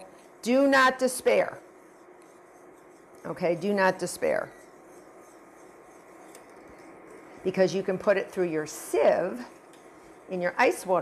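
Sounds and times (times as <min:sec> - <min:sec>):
whisk scraping saucepan: 0:00.0 - 0:11.0.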